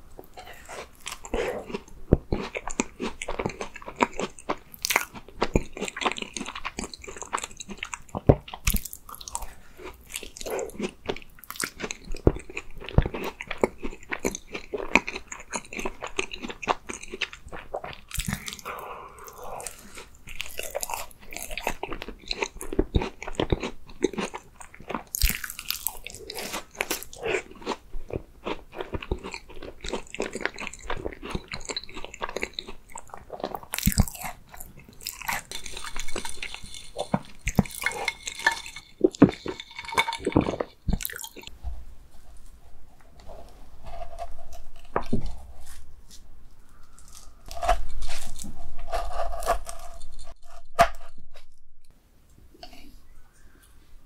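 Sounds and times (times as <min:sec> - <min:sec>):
crunchy pastry chewing: 0:00.2 - 0:41.6, 0:42.2 - 0:50.4.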